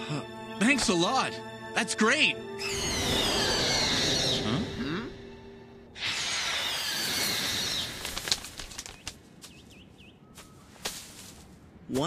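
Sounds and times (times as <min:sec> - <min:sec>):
bird wing flaps: 0:07.4 - 0:09.7.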